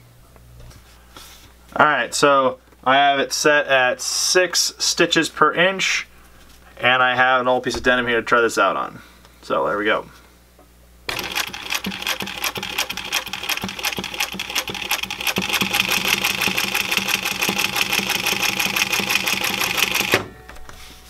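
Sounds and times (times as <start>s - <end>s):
sewing machine clatter: 11.1s - 20.2s.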